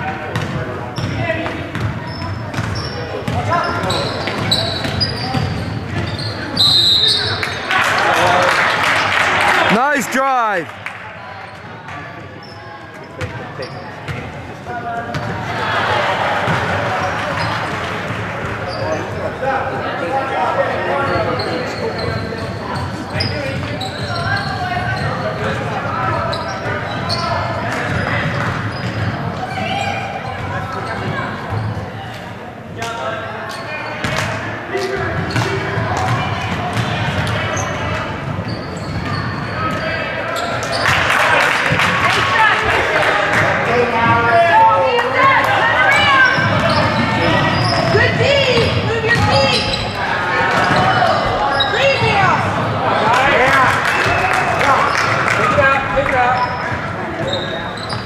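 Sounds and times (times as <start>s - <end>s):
indistinct shouting voices: 9.6s - 10.7s.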